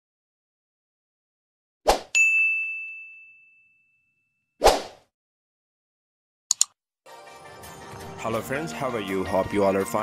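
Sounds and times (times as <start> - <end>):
bright bell-like ding: 2.2 - 4.3.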